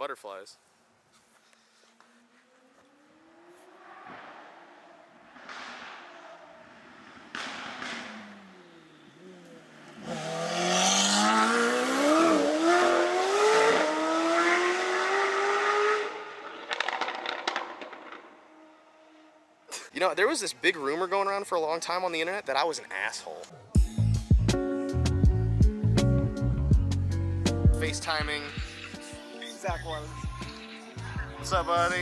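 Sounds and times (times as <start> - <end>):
exhaust crackles: 2.0 - 14.0, 16.0 - 19.9, 27.7 - 32.0
supercar engine accelerating past: 2.5 - 19.4.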